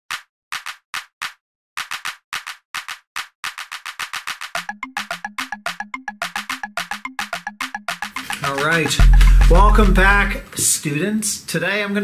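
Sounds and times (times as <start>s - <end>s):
intro music with dry percussive hits: 4.6s - 10.4s.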